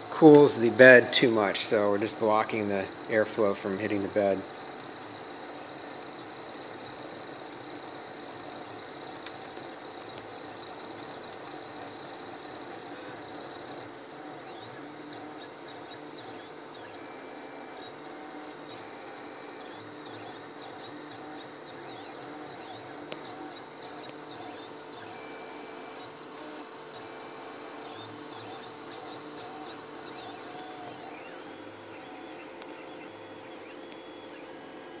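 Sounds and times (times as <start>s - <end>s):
printer stepper motors whining: 0.0s - 35.0s.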